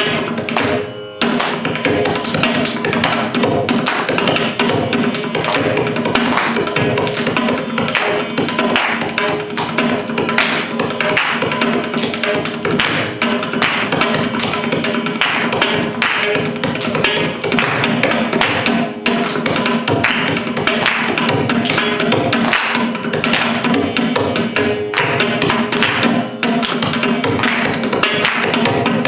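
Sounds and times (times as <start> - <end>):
mridangam rapid strokes: 0.0 - 29.0.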